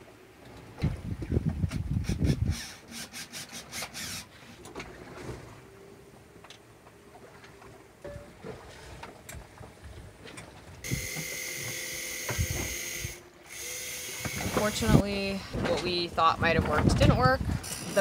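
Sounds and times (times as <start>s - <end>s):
motor whirring with whine: 10.9s - 15.0s.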